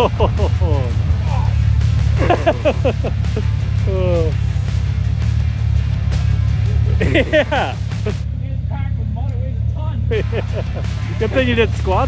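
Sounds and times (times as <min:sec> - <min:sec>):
men laughing: 0:00.0 - 0:01.3, 0:02.0 - 0:04.4, 0:06.5 - 0:08.2, 0:10.0 - 0:12.0
background music: 0:00.0 - 0:12.0
vehicle engine idling: 0:00.0 - 0:12.0.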